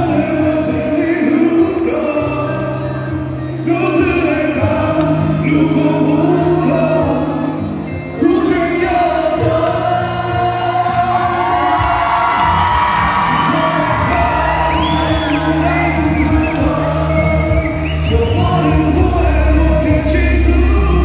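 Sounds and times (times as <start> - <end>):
amplified pop backing track: 0.0 - 21.0
man singing into microphone: 0.0 - 21.0
audience whooping and cheering: 11.0 - 21.0.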